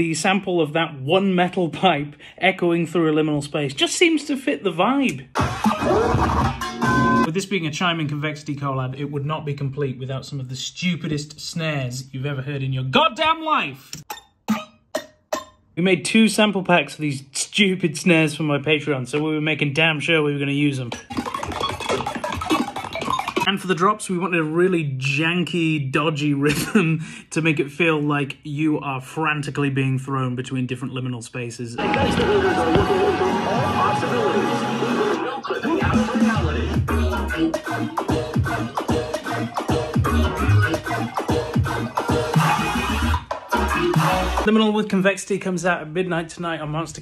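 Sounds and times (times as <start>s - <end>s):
melodic dubstep music: 5.3s - 7.3s, 31.8s - 44.5s.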